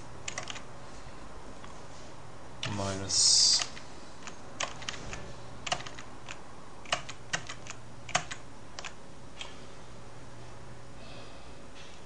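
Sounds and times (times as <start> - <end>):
faint low hum: 0.0 - 12.0
keyboard typing clicks: 0.2 - 0.7, 3.6 - 9.6.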